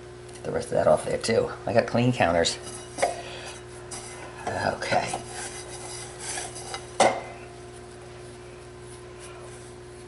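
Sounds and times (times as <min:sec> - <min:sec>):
faint hum: 0:00.0 - 0:10.0
hands kneading dough: 0:03.6 - 0:10.0.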